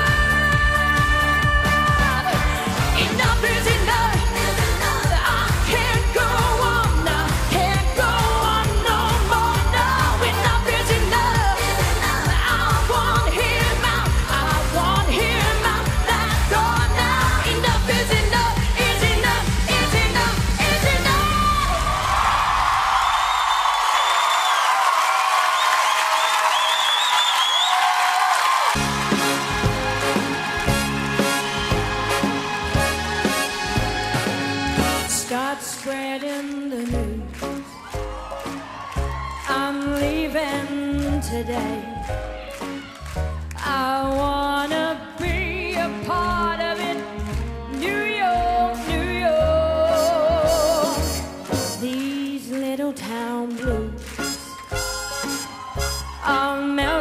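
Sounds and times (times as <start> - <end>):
woman singing: 0.0 - 21.9, 35.0 - 37.7, 39.4 - 42.2, 43.6 - 54.6, 56.2 - 57.0
live band with driving beat: 28.8 - 35.6.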